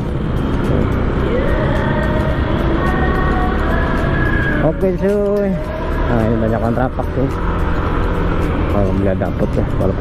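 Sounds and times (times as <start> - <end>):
motor scooter engine rumble: 0.0 - 10.0
wind noise: 0.0 - 10.0.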